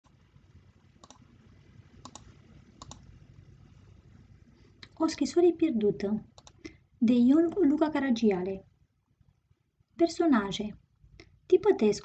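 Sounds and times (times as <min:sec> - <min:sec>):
faint room noise: 0:00.0 - 0:12.0
computer mouse clicking: 0:01.0 - 0:01.3, 0:02.0 - 0:03.1, 0:06.3 - 0:06.7.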